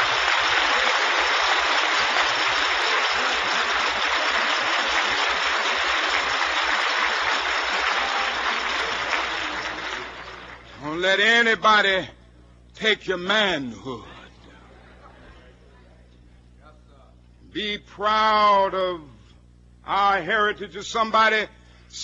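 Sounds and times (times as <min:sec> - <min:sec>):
large audience applauding: 0:00.0 - 0:10.9.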